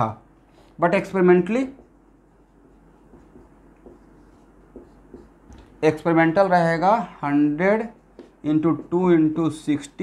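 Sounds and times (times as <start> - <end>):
man talking: 0.0 - 1.8, 5.8 - 10.0
marker pen writing on whiteboard: 0.5 - 10.0.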